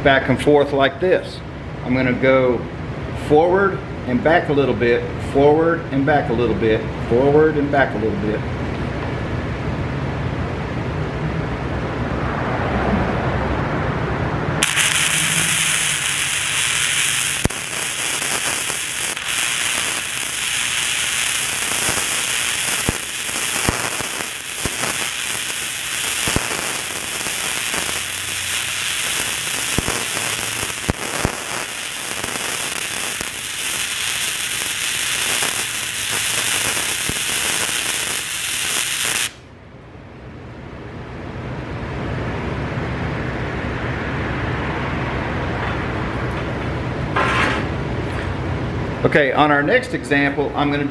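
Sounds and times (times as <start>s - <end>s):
welding arc crackling with pops: 14.6s - 39.4s.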